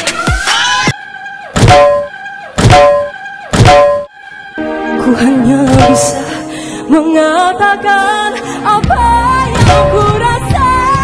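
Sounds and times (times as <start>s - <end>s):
deep thud hits with ringing tone: 1.6s - 4.1s.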